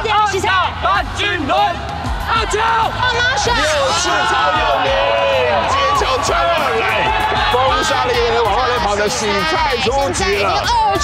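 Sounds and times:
background music: 0.0s - 11.0s
people talking and calling out: 0.0s - 11.0s.

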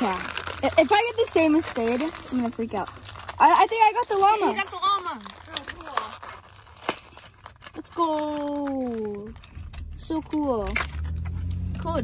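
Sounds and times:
plastic and paper packaging crinkling: 0.0s - 12.0s.

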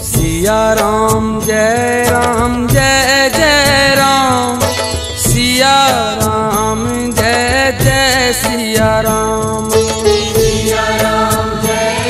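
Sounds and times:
devotional music with percussion: 0.0s - 12.0s.

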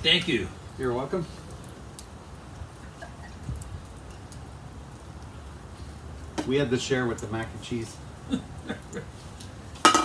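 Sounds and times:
wood fire crackling: 0.0s - 10.0s.

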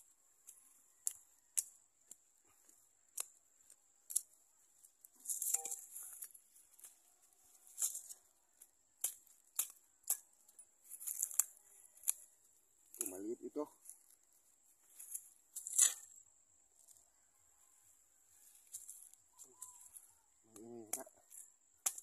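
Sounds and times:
roots tearing from soil: 10.8s - 13.2s, 14.9s - 16.2s
blade scraping into soil: 15.0s - 16.2s.

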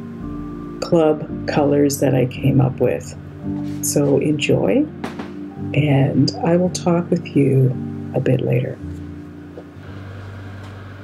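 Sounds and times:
appliance or fan hum: 9.9s - 11.0s.

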